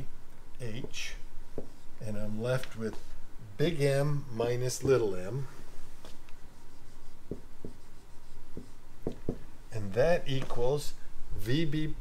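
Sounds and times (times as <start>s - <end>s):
marker writing on whiteboard: 0.7s - 2.0s, 6.0s - 10.6s.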